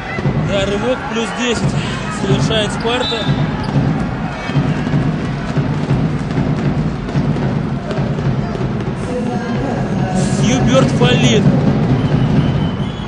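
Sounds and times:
crowd noise: 0.0 - 13.0
drumming: 0.0 - 13.0
music playing in hall: 0.0 - 13.0.

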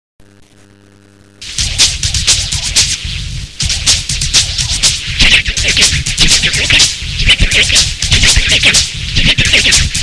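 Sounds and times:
faint electrical hum: 0.2 - 10.0
electronic backing track with beat: 1.4 - 10.0.

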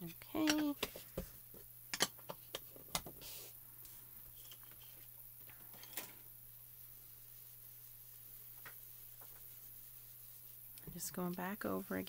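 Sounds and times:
foam tool rubbing on paper: 6.5 - 12.0.

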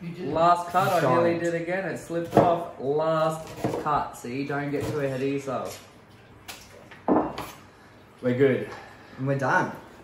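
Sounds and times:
knife chopping onion on board: 2.1 - 2.7, 3.4 - 4.0, 4.6 - 5.3.

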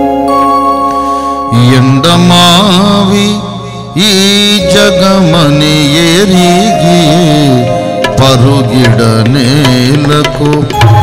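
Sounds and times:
steady held tones: 0.0 - 11.0
man singing into a microphone: 1.5 - 11.0.

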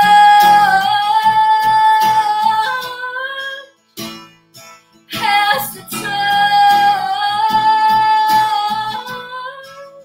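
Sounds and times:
woman singing: 0.0 - 3.8, 5.1 - 10.0
acoustic guitar strumming: 0.0 - 10.0.

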